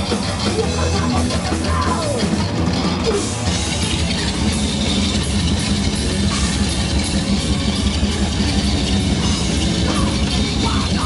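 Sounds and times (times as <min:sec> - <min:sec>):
bass guitar: 0:00.0 - 0:11.0
distorted electric guitar: 0:00.0 - 0:11.0
drum kit: 0:00.0 - 0:11.0.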